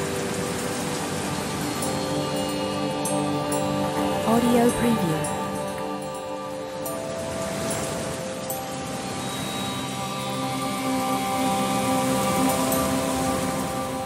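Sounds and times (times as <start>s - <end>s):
rain: 0.0s - 14.0s
slow ambient music: 0.0s - 14.0s.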